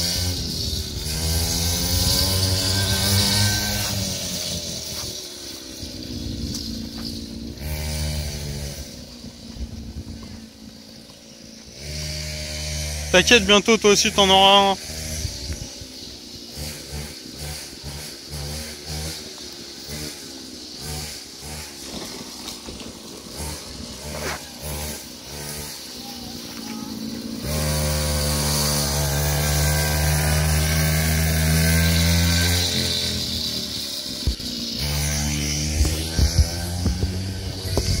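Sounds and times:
small quad motor running: 0.0s - 38.0s.

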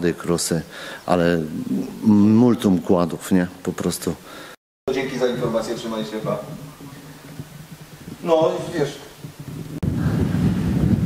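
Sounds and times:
wind rumble on microphone: 5.3s - 11.0s.

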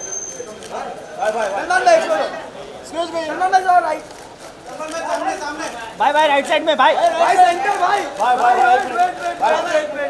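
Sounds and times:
background chatter: 0.0s - 10.0s
people talking and calling out: 0.0s - 10.0s.

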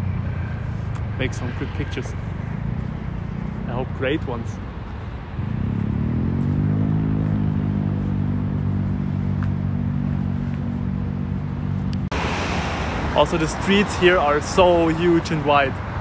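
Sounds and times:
street traffic noise: 0.0s - 16.0s.

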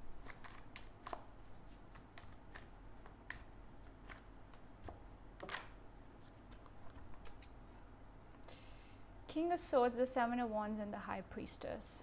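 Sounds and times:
cards being shuffled: 0.1s - 7.9s.

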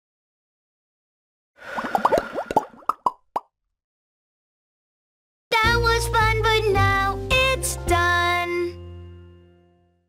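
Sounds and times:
cartoon bubble plops: 1.8s - 3.5s.

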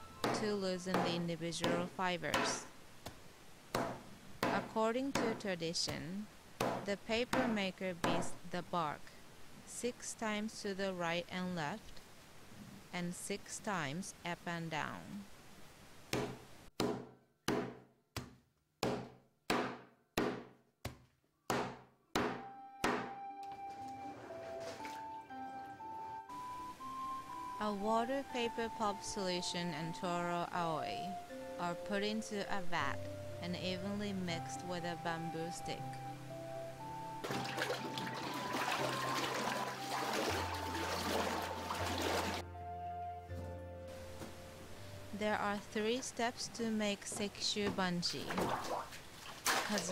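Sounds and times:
slow melody: 0.0s - 0.6s, 22.4s - 46.0s
soft background music: 0.0s - 2.8s, 3.7s - 9.2s, 21.5s - 48.6s
stick beating bark: 0.2s - 2.7s
water sloshing in a vat: 24.3s - 25.3s, 37.2s - 42.4s, 48.2s - 49.9s.

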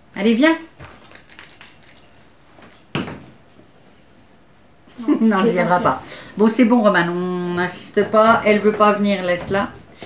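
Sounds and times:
light metallic jingling: 0.0s - 5.7s, 8.2s - 10.0s.

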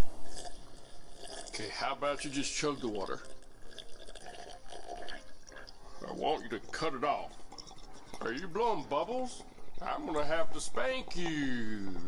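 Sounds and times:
sipping and gulping water: 0.0s - 10.2s.

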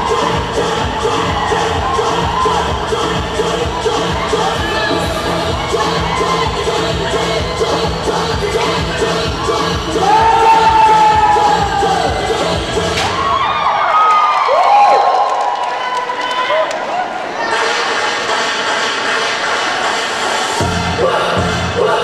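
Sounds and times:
dance music: 0.0s - 13.7s, 16.4s - 22.0s
crowd cheering and shouting: 0.0s - 22.0s.

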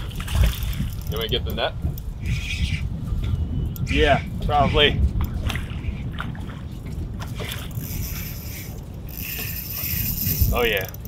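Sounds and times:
water lapping against boat hull: 0.0s - 11.0s
wind rumbling on microphone: 0.0s - 11.0s
fishing reel ticking: 0.4s - 2.6s, 7.7s - 11.0s.

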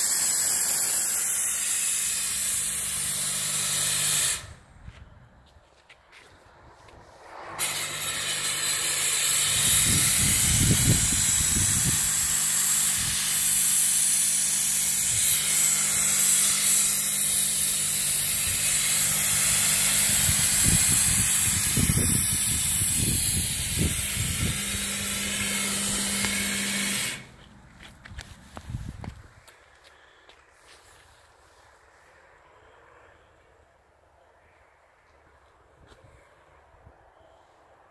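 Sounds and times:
smoke machine hissing: 0.0s - 4.4s, 7.8s - 27.3s.

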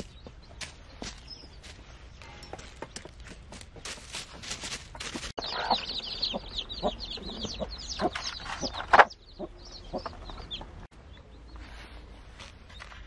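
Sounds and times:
chicks peeping: 0.0s - 11.8s
chickens clucking: 2.6s - 10.9s.

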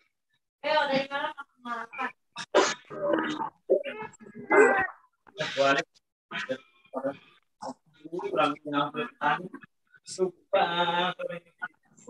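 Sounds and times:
person speaking over video call: 0.6s - 12.0s.

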